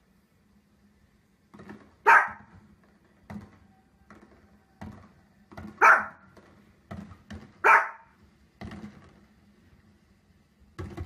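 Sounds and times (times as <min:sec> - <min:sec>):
dog barking: 0:02.0 - 0:02.5, 0:05.7 - 0:06.3, 0:07.6 - 0:08.2.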